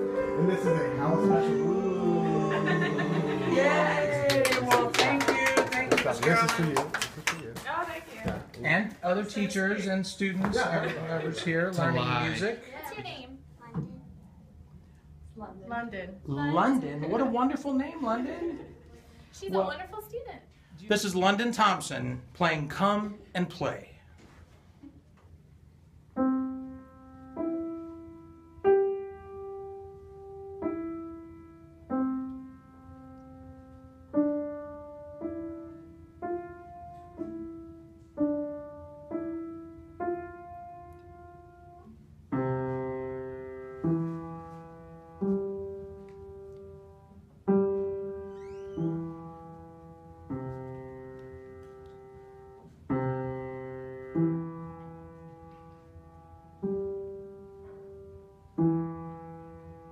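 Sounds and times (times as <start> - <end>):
upright piano played slowly: 0.0 - 7.3, 25.9 - 59.9.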